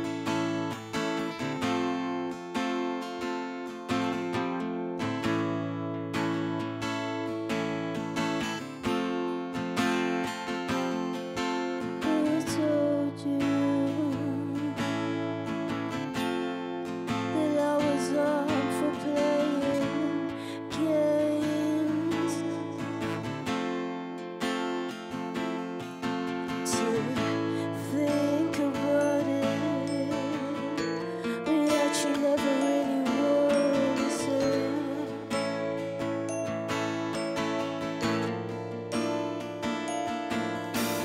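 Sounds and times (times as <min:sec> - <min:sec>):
acoustic guitar picking: 0:00.0 - 0:41.0
woman singing: 0:11.8 - 0:15.3, 0:17.1 - 0:23.4, 0:26.5 - 0:36.2.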